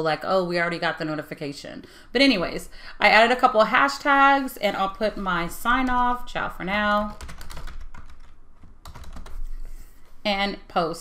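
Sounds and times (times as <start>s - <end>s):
typing on computer keyboard: 7.1s - 9.5s.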